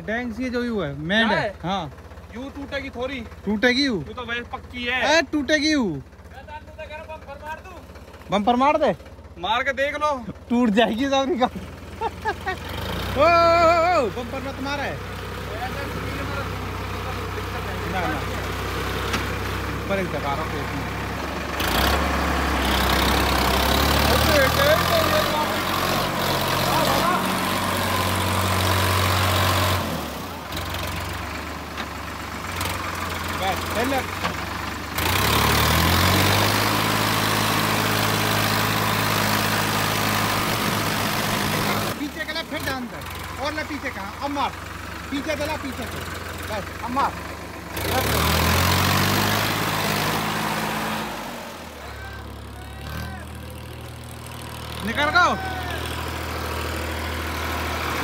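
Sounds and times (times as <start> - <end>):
tractor diesel engine under load: 0.0 - 58.0.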